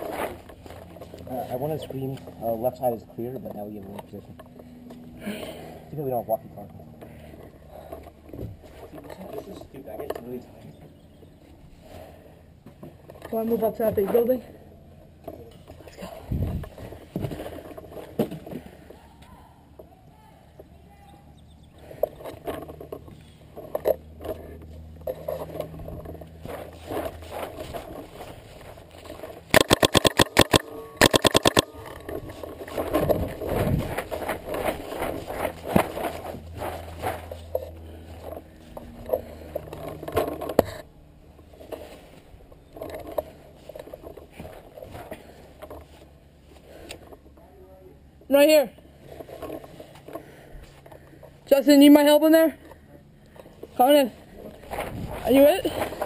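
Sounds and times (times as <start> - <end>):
scraping and rustling: 21.9 - 29.5, 31.6 - 47.1, 53.6 - 56.0
paintball marker firing shots: 29.5 - 31.7.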